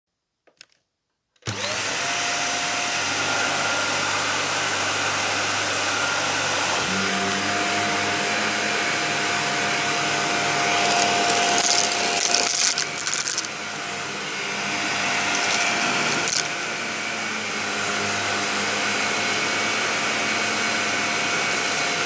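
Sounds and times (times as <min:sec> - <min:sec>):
vacuum cleaner motor running: 0:01.4 - 0:22.0.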